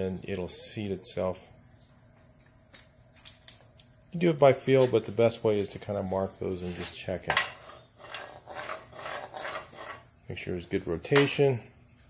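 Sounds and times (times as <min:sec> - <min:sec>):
metal rubbing and scraping: 0:06.6 - 0:10.1.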